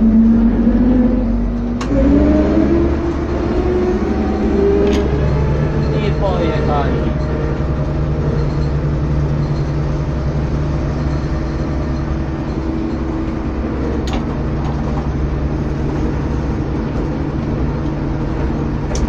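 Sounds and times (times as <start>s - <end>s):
diesel engine running: 0.0s - 19.0s.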